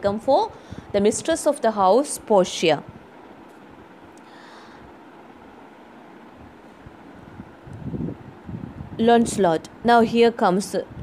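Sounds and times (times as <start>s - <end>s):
faint hiss: 0.4s - 10.0s.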